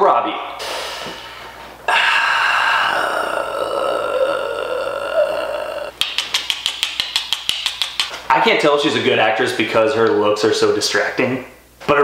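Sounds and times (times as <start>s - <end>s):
man's wordless vocal reaction: 1.9s - 6.0s
rapid sharp clicks: 6.0s - 8.2s.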